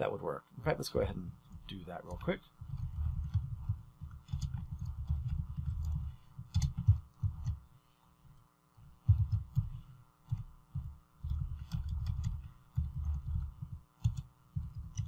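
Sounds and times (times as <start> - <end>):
steady electrical hum: 0.0 - 15.0
computer keyboard typing: 2.1 - 7.6, 9.0 - 15.0.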